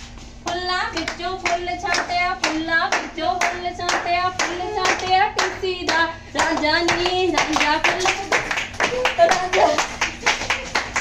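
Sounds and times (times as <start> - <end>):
sharp hand claps: 0.5 - 11.0.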